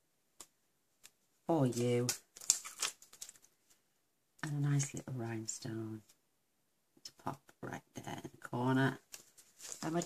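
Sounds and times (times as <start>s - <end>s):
plastic sheet crinkling and clicking: 0.4s - 3.7s, 9.0s - 10.0s.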